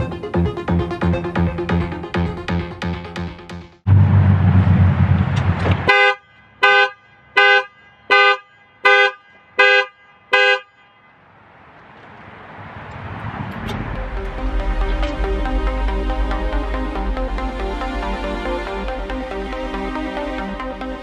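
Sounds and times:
car horn honks: 0:05.8 - 0:11.2.

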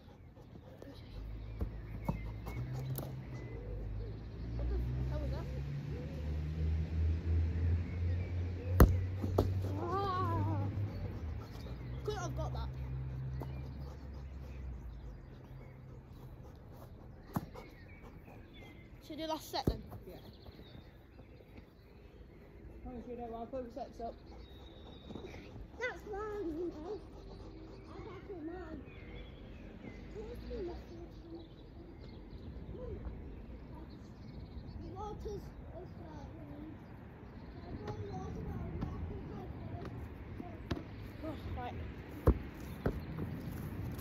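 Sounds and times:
football being kicked: 0:08.8 - 0:10.0, 0:42.1 - 0:43.3.

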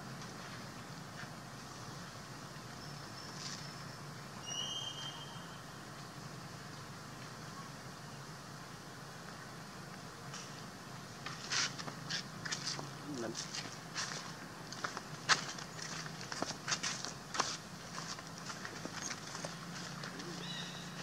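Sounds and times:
crackling clicks and rustles: 0:11.2 - 0:20.3.

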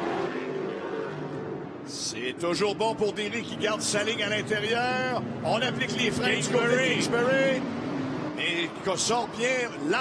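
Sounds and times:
race car engines at high revs: 0:00.0 - 0:01.9, 0:02.8 - 0:10.0.

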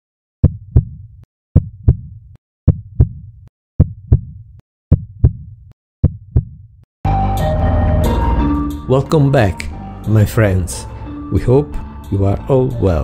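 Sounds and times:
heartbeat thumps: 0:00.4 - 0:06.8
music: 0:07.1 - 0:13.0.

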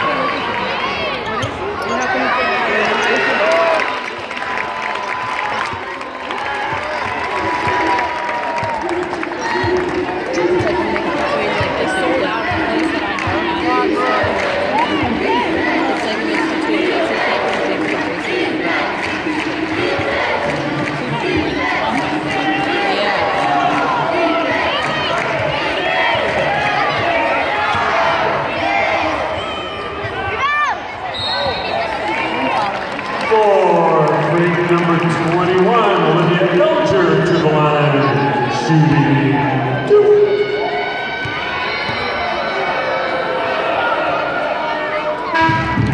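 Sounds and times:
crowd chatter: 0:00.0 - 0:45.9
sneakers squeaking: 0:00.9 - 0:03.4
short whistle: 0:31.1 - 0:31.8.

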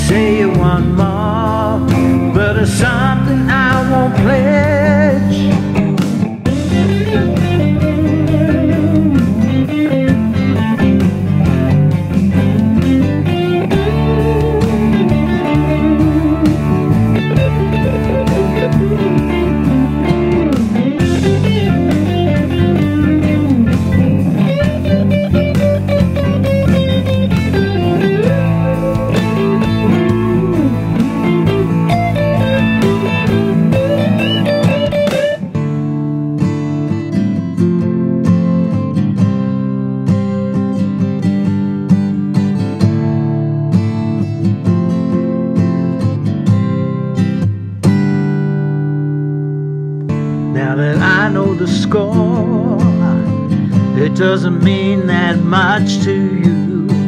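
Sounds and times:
backing band playing: 0:00.0 - 0:36.6, 0:50.1 - 0:57.0
electric guitar solo: 0:00.0 - 0:57.0.

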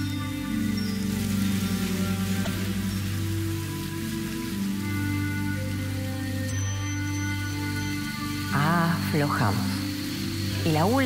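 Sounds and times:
calm sustained-tone music: 0:00.0 - 0:11.0
rain-like hiss: 0:00.0 - 0:11.0.

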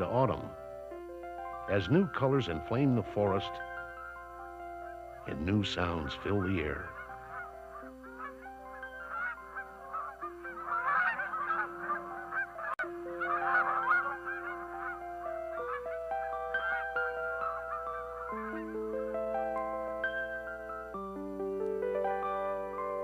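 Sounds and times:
slow held-note music: 0:00.0 - 0:23.0
geese honking in flight: 0:01.4 - 0:21.0.

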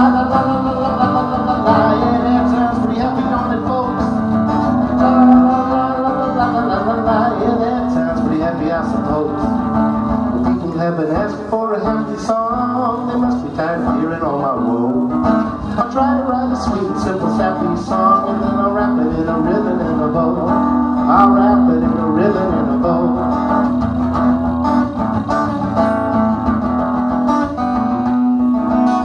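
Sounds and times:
acoustic guitar strumming: 0:00.0 - 0:29.0
electric guitar lead line: 0:00.0 - 0:29.0.

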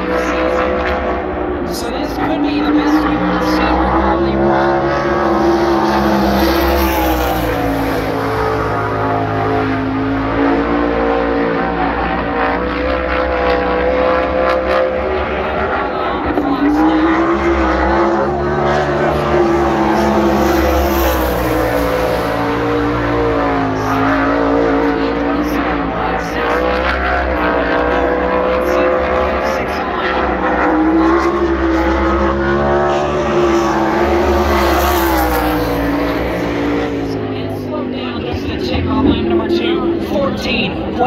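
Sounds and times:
race car engine at speed: 0:00.0 - 0:41.0.

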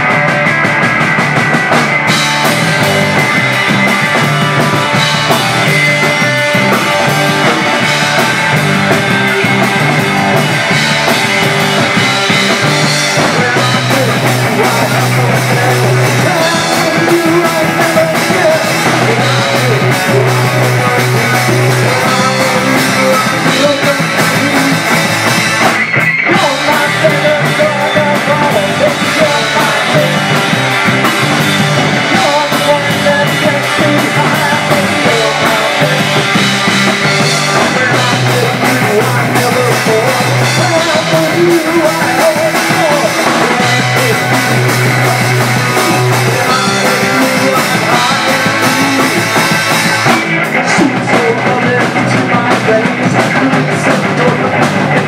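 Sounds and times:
bass guitar: 0:00.0 - 0:55.0
distorted electric guitar: 0:00.0 - 0:55.0
drum kit: 0:00.0 - 0:55.0
person singing: 0:02.1 - 0:55.0.

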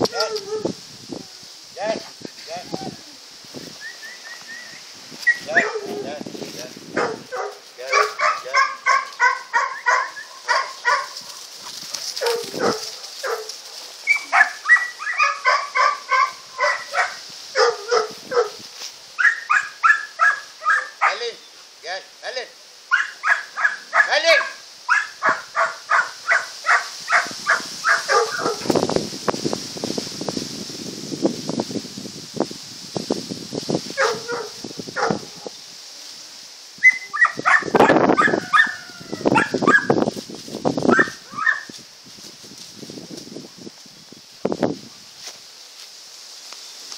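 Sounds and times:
puppies yapping: 0:07.0 - 0:11.4, 0:12.0 - 0:18.5, 0:19.2 - 0:21.2, 0:22.9 - 0:28.7, 0:34.0 - 0:35.3, 0:36.8 - 0:40.0, 0:40.9 - 0:41.7
puppy yelps: 0:08.0 - 0:11.1, 0:14.1 - 0:18.5, 0:19.2 - 0:21.2, 0:22.9 - 0:28.6, 0:36.8 - 0:40.0, 0:40.9 - 0:41.7.

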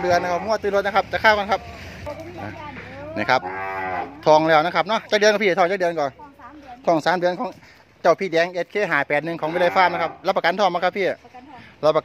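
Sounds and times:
cow mooing: 0:00.0 - 0:00.7, 0:02.8 - 0:04.5, 0:09.4 - 0:10.3.

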